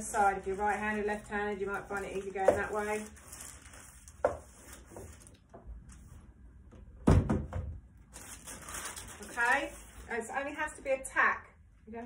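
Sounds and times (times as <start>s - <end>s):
crisp packets rustling: 0.0s - 5.4s, 8.1s - 10.3s.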